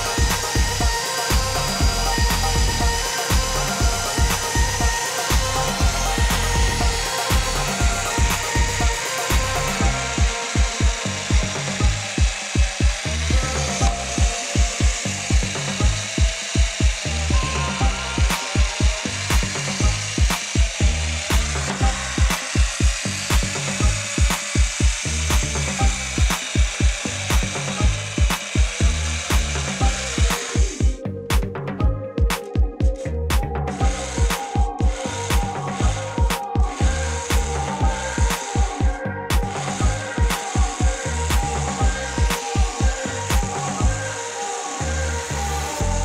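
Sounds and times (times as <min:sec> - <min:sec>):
electric drill drilling into wood: 0:00.0 - 0:31.0, 0:33.3 - 0:46.0
background music with beat: 0:00.0 - 0:46.0.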